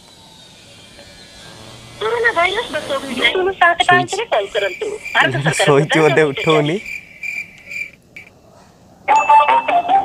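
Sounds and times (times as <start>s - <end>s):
insects chirping: 0.0s - 8.3s.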